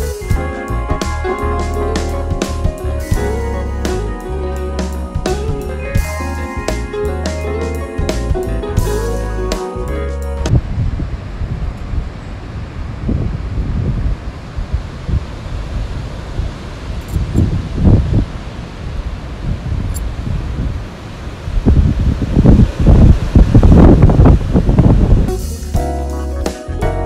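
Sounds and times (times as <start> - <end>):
wind buffeting microphone: 10.5 - 25.4.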